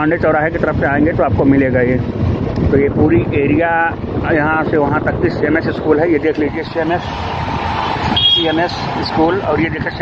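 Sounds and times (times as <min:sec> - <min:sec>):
road traffic noise: 0:00.0 - 0:10.0
wind noise: 0:00.0 - 0:10.0.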